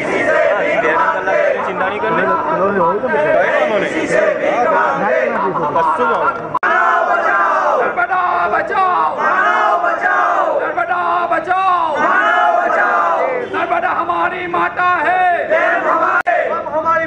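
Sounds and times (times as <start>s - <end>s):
crowd of men shouting slogans: 0.0s - 16.8s.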